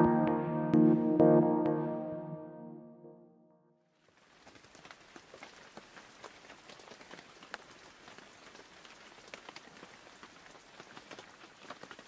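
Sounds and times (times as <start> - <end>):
faint rain hiss: 4.0 - 12.0
raindrop ticks: 4.3 - 12.0.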